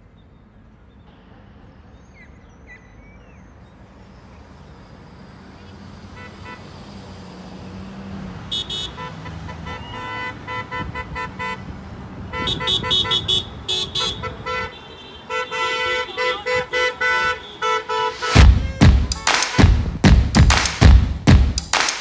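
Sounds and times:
low rumble of traffic: 0:00.0 - 0:21.7
car horns honking: 0:04.9 - 0:21.8
short rapid horn toots: 0:12.4 - 0:20.0.

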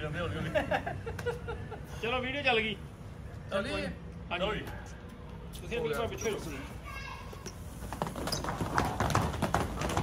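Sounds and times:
battle ropes slapping tiled floor: 0:07.4 - 0:10.0.

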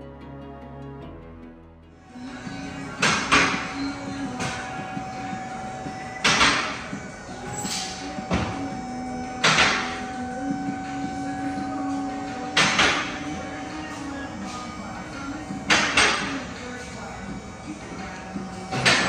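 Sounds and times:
steady mechanical hum: 0:02.0 - 0:19.0.

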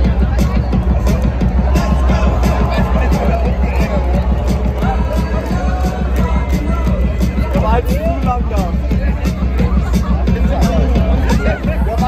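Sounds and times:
crowd babble: 0:00.0 - 0:12.0
loud music with heavy bass: 0:00.0 - 0:12.0.

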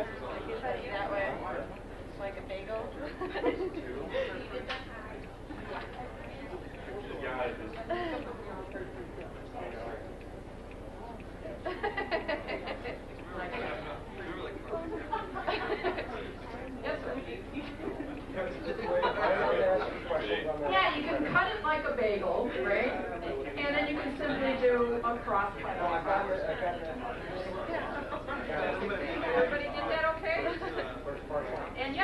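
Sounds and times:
indistinct chatter: 0:00.0 - 0:32.0.

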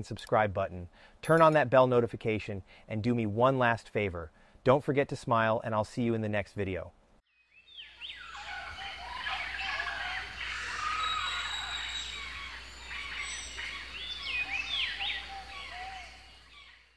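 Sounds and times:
birds chorus: 0:07.6 - 0:16.9.

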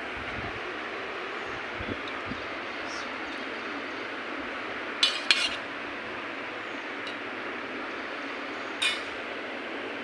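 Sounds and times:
steady background hiss: 0:00.0 - 0:10.0
steel plate clinking: 0:05.0 - 0:05.7, 0:08.8 - 0:09.2.

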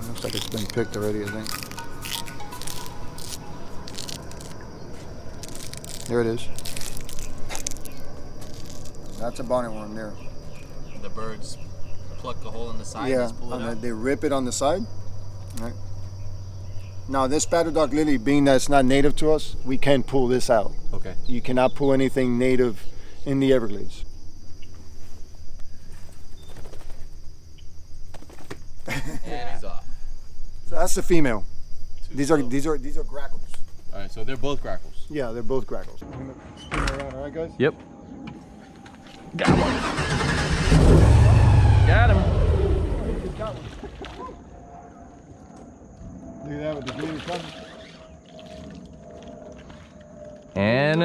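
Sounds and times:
plant stem tearing wetly: 0:00.0 - 0:04.6, 0:05.3 - 0:09.3
insects chirring: 0:00.0 - 0:51.0
stem snapping: 0:05.4 - 0:09.3
low rumble: 0:40.7 - 0:43.8.

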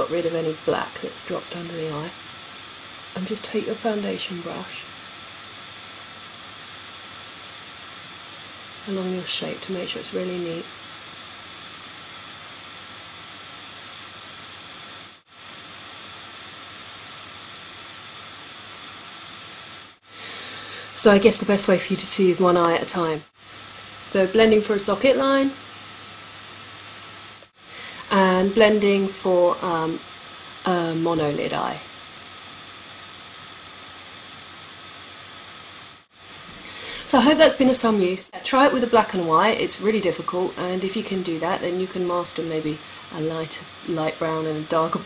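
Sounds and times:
recording hiss: 0:00.0 - 0:45.0.

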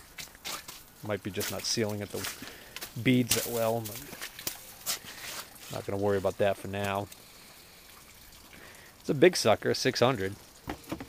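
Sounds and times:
meltwater trickling and dripping: 0:00.0 - 0:11.0.

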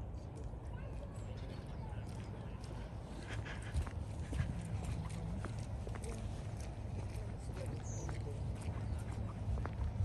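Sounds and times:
footsteps on paved path: 0:00.0 - 0:10.0.

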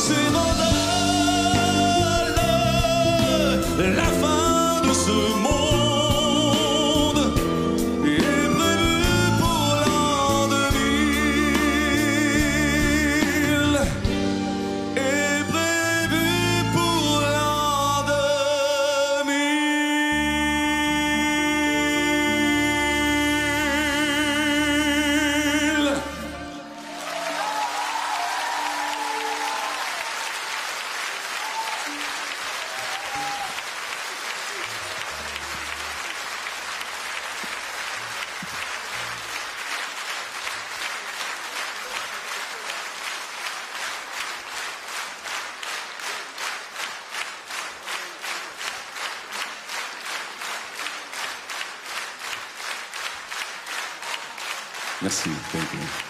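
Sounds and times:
rhythmic clapping in unison: 0:00.0 - 0:14.2, 0:25.6 - 0:56.0
audience applauding: 0:23.8 - 0:56.0.

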